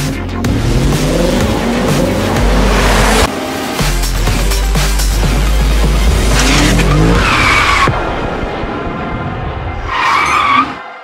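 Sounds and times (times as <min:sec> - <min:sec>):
car engine revving: 0:00.0 - 0:09.6.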